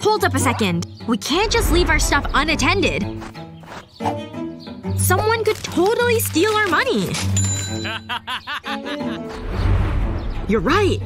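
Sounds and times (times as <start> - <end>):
background music: 0.0 - 11.0
man snickering: 7.8 - 9.4.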